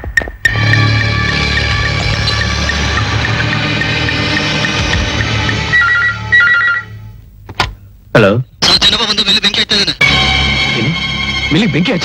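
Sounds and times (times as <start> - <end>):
desk telephone ringing: 5.6 - 7.0
film score sustained chord: 10.0 - 12.0.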